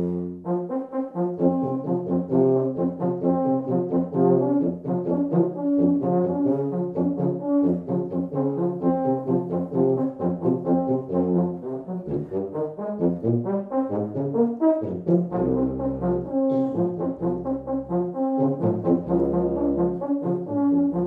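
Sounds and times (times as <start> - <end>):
euphonium and tuba duet: 0.0 - 21.0.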